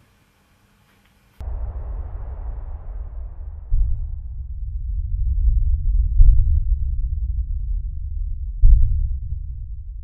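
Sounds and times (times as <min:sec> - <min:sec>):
deep bass rumble: 0:01.4 - 0:10.0
low boom: 0:01.4 - 0:10.0.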